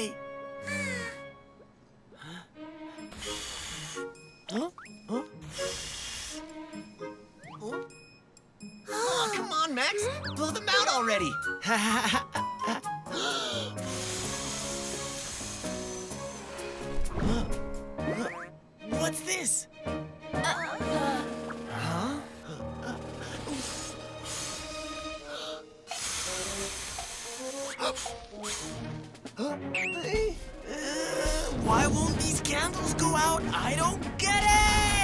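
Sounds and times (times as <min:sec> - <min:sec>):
cartoon background music: 0:00.0 - 0:35.0
airy blowing hiss: 0:03.1 - 0:04.2, 0:05.4 - 0:06.8, 0:13.1 - 0:17.1, 0:23.3 - 0:29.1.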